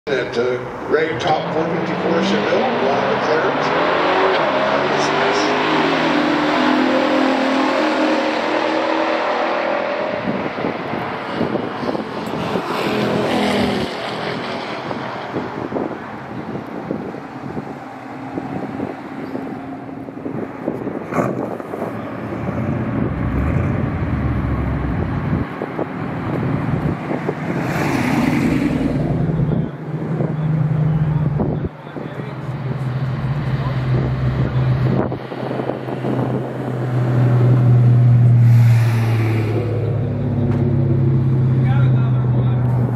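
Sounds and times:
cars accelerating hard: 0.1s - 42.9s
engine revving: 0.9s - 15.9s, 21.1s - 25.5s, 26.2s - 42.9s.

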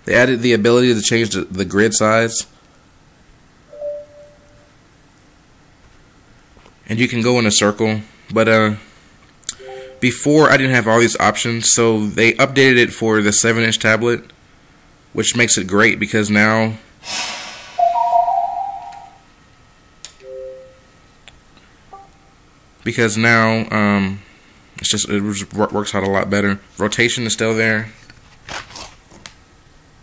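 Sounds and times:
faint room hiss: 0.0s - 30.0s
clear steady tone: 3.7s - 4.8s, 9.5s - 10.3s, 17.4s - 19.3s, 20.1s - 21.1s, 21.9s - 22.4s.

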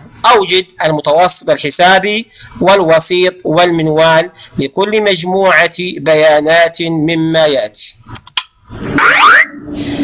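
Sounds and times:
cartoon rising swoop effect: 8.8s - 10.0s.

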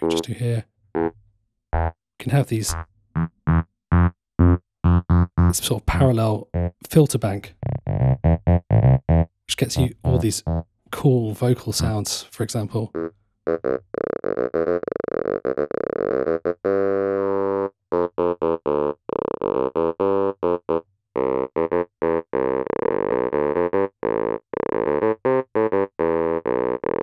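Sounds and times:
synthesizer staccato notes: 0.0s - 0.4s, 1.8s - 2.0s, 2.6s - 10.7s.

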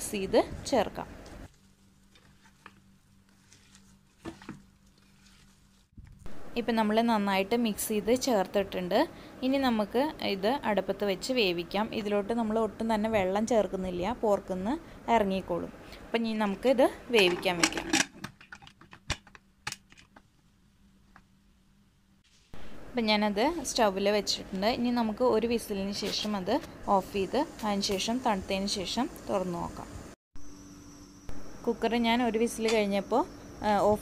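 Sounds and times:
woman speaking: 0.0s - 1.1s, 6.6s - 17.9s, 23.0s - 29.9s, 31.7s - 34.0s
low steady hum: 0.0s - 18.7s, 19.6s - 34.0s.

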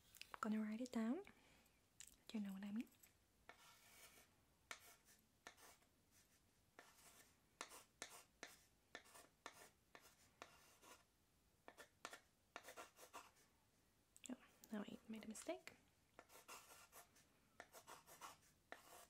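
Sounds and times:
pen writing: 3.5s - 11.0s, 11.7s - 13.4s, 16.2s - 19.0s.

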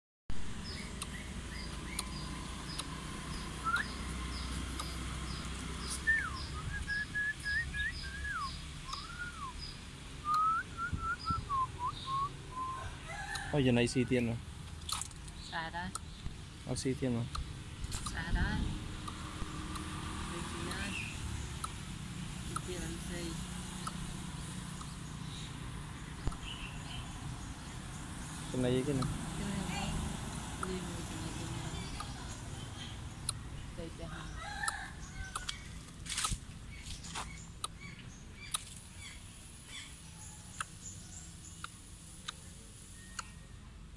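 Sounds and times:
bird calling: 0.7s - 13.4s
sharp clicks: 0.9s - 3.1s, 4.7s - 5.0s, 8.9s - 9.2s, 14.6s - 16.4s, 19.0s - 20.0s
whistled notes: 3.6s - 4.0s, 6.0s - 9.6s, 10.2s - 12.8s.

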